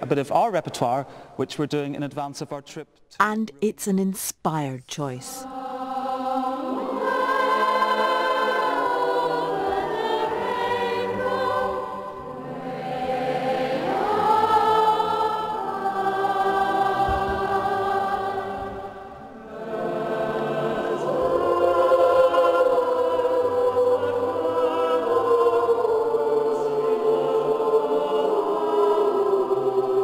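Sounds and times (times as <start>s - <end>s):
boys' choir singing: 5.4s - 30.0s.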